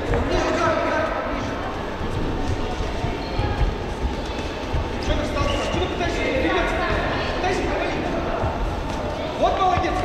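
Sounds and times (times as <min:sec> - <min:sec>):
sports hall noise: 0:00.0 - 0:10.0.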